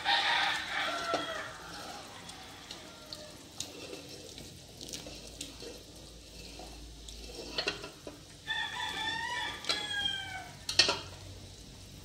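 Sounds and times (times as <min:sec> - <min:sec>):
rooster crowing: 0:00.0 - 0:03.6, 0:08.4 - 0:10.7
tongs clicking against pot: 0:10.6 - 0:11.2.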